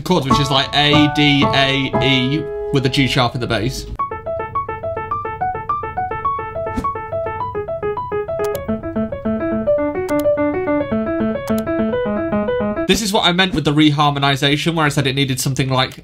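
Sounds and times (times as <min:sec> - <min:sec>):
piano playing: 0:00.2 - 0:13.1
sharp clicks: 0:08.4 - 0:08.7, 0:10.0 - 0:10.4, 0:11.4 - 0:11.7.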